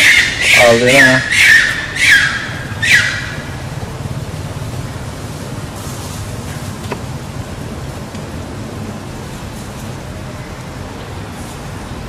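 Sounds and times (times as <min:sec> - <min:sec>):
monkey screeches: 0:00.0 - 0:03.4
steady background hiss: 0:00.0 - 0:12.0.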